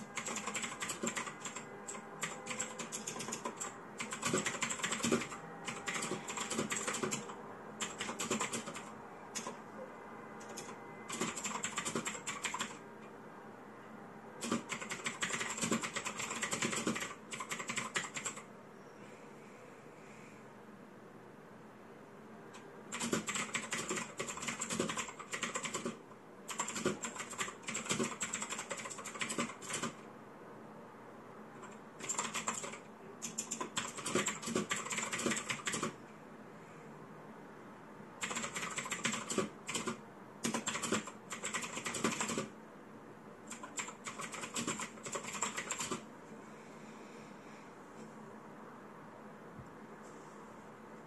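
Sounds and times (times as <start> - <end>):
typing on mechanical keyboard: 0.0 - 9.6, 10.4 - 12.8, 14.4 - 18.5, 22.9 - 30.0, 31.6 - 36.0, 38.2 - 42.5, 43.5 - 46.1.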